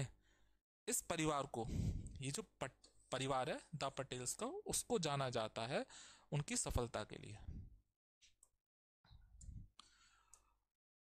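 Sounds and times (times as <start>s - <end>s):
soft breath-like sound: 1.6s - 2.2s, 9.4s - 10.6s.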